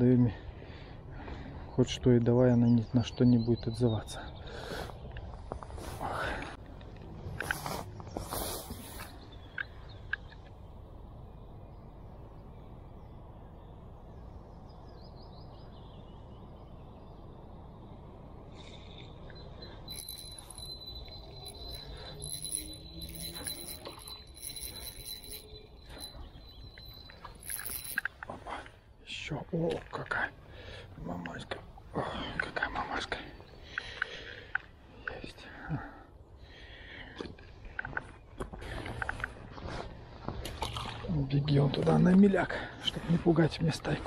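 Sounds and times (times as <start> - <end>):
fishing reel whining: 19.9 - 28.1.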